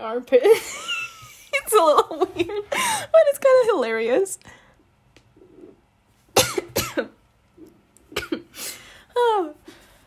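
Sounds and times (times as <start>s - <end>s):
woman coughing: 6.4s - 7.2s, 8.1s - 8.6s.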